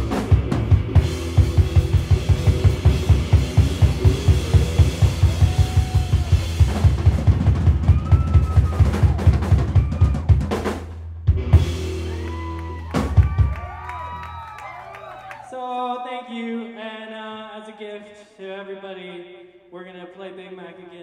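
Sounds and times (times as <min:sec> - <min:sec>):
drum kit fast beat: 0:00.0 - 0:14.2
rock band playing: 0:00.0 - 0:14.9.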